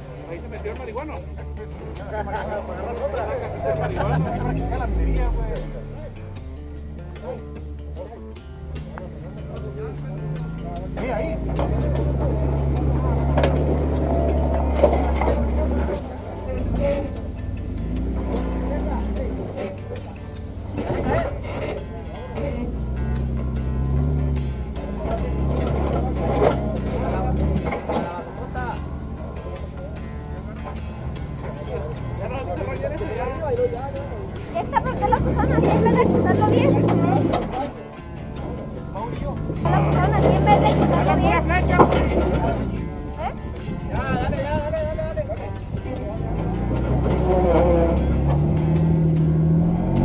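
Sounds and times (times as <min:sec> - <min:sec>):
car engine at low revs: 0:00.0 - 0:50.0
people's voices: 0:00.0 - 0:50.0.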